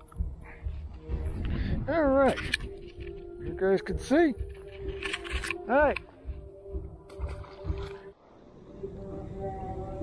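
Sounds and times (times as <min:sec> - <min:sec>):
wind buffeting microphone: 0:00.3 - 0:02.5.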